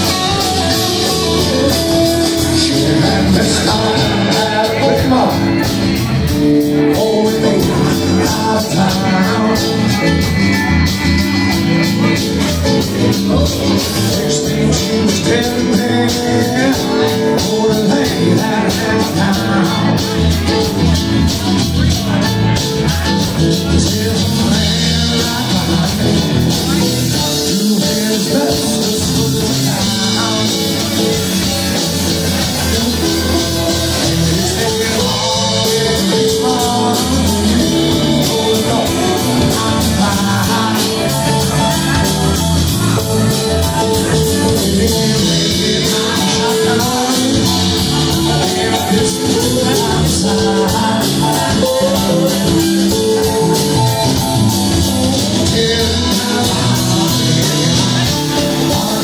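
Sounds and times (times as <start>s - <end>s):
electric guitar: 0.0s - 59.0s
keyboard: 0.0s - 59.0s
steady beat: 0.0s - 59.0s.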